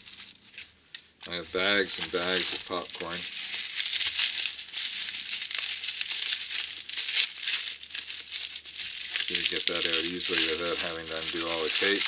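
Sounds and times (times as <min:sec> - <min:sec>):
bubble wrap and paper crinkling: 0:00.0 - 0:12.0.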